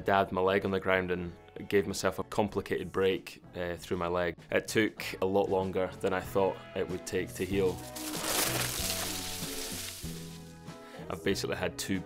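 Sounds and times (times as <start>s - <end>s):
background music: 0.0s - 12.0s
bike tyres sliding over scree: 7.6s - 10.6s.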